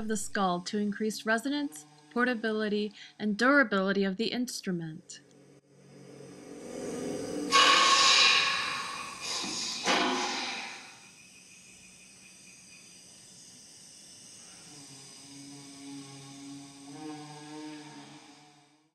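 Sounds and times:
breathy hissing horn blasts: 0:00.0 - 0:03.4, 0:04.9 - 0:18.9
low pitched drone: 0:00.0 - 0:11.2.

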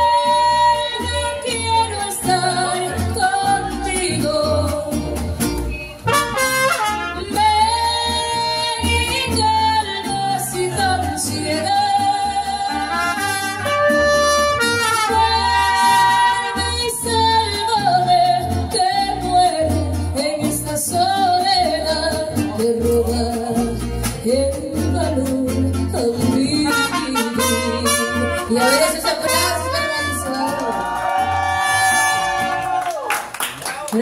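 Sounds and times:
person singing: 0:00.0 - 0:05.2, 0:06.6 - 0:31.3
mariachi band playing: 0:00.0 - 0:33.4.

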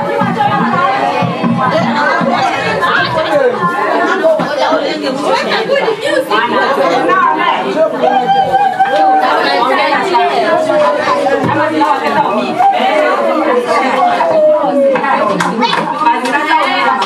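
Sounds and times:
people talking loudly: 0:00.0 - 0:17.0.

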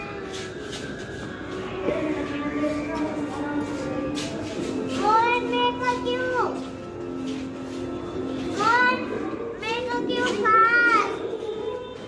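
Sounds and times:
young children chattering: 0:01.7 - 0:06.7, 0:08.5 - 0:11.6.

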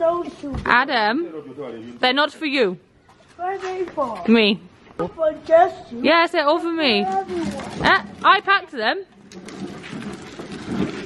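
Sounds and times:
plastic wheels rattling on concrete: 0:06.6 - 0:11.0.

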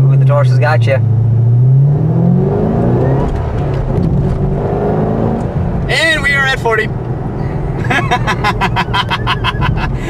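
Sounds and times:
car engine droning: 0:00.0 - 0:10.0
rapid laughter: 0:07.8 - 0:10.0.

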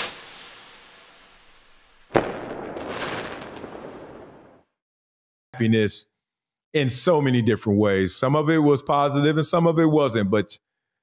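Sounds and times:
sharp hit: 0:00.0 - 0:02.5
whoosh: 0:00.0 - 0:02.6
crackling fireworks-like tail: 0:00.0 - 0:04.8.

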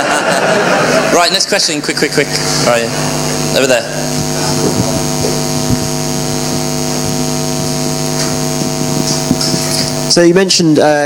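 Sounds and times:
electrical mains hum and buzz: 0:00.0 - 0:11.0.

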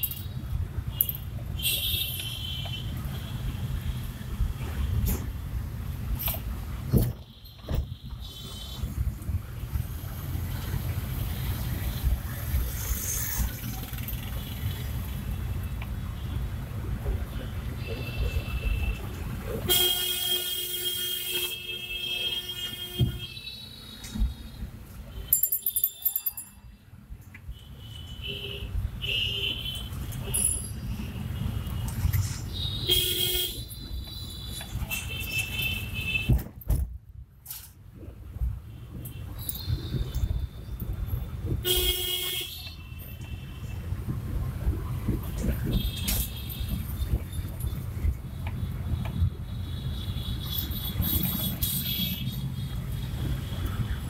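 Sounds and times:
car engine and tyres rumbling: 0:00.0 - 0:25.4.

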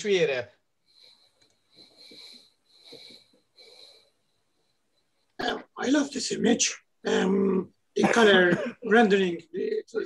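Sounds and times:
breathy puffs into microphone: 0:00.9 - 0:04.2.

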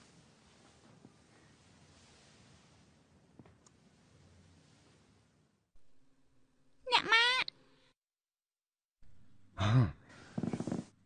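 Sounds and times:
person sighing: 0:09.6 - 0:10.1.

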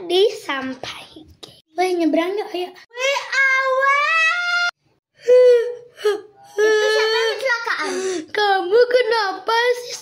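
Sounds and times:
girl whimpering and crying: 0:02.9 - 0:08.3.

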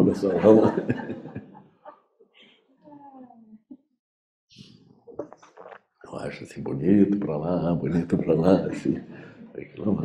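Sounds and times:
laughter: 0:00.0 - 0:02.0.

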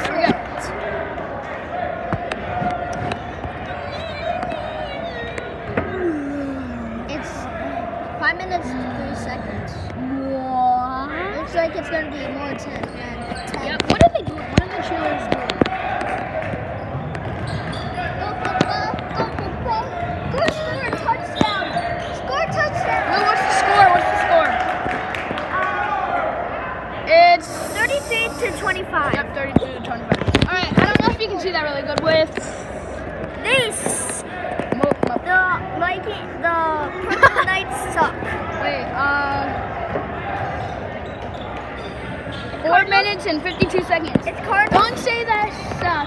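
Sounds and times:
crowd chatter: 0:00.0 - 0:46.0
voices calling and shouting: 0:00.0 - 0:46.0.

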